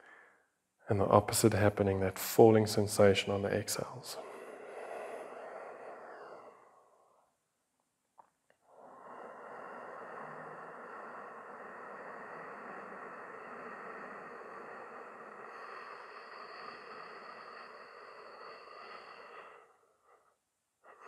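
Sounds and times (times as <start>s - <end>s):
deep breath: 0.0s - 0.6s, 2.5s - 7.6s, 8.5s - 21.0s.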